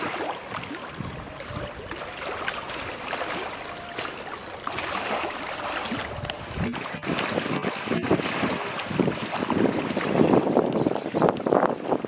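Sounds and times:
water sloshing and splashing: 0.0 - 12.0.

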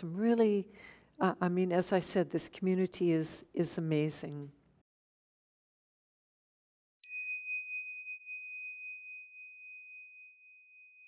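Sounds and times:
high clear chime tone: 7.0 - 11.0.

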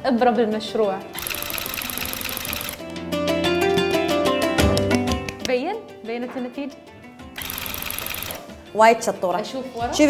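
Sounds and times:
electric tufting gun chattering: 1.1 - 2.8, 7.4 - 8.5
guitar music: 2.7 - 7.8.

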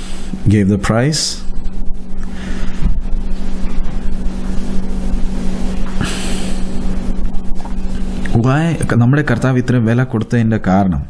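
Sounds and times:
constant low hum: 0.0 - 11.0
rumbling background noise: 0.0 - 11.0
breathy hiss: 5.9 - 6.9.

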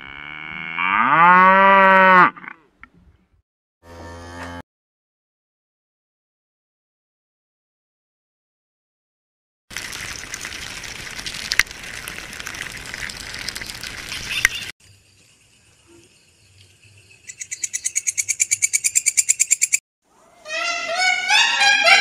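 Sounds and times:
crackling hiss with clicks: 9.7 - 14.7
pitched gliding calls: 17.5 - 22.0.

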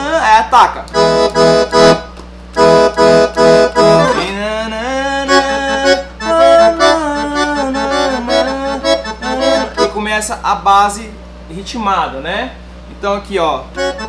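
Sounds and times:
accordion playing chords and melody: 0.0 - 10.4, 13.7 - 14.0.

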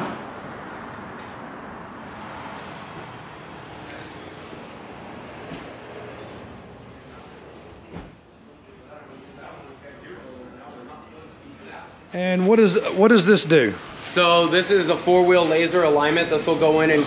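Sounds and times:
repair shop hiss and rumble: 12.0 - 17.0.

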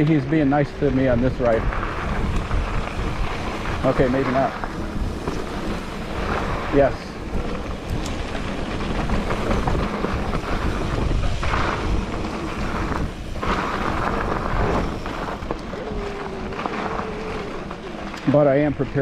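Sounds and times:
tyres rolling over dirt trail: 0.0 - 19.0
wind buffeting microphone: 0.0 - 19.0.

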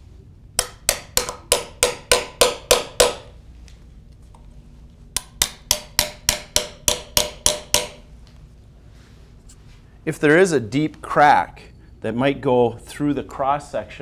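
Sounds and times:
small hammer tapping metal probe: 0.6 - 3.3, 5.2 - 8.0.

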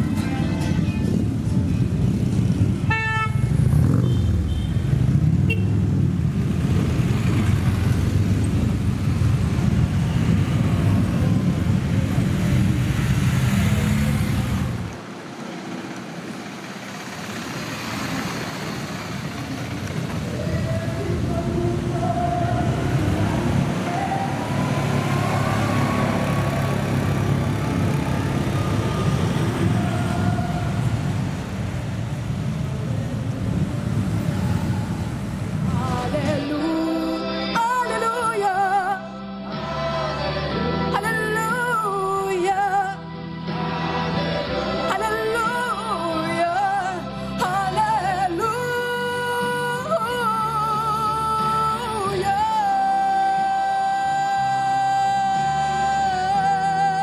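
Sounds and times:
motorcycle engines rumbling: 0.0 - 38.9
street noise: 0.0 - 57.0.

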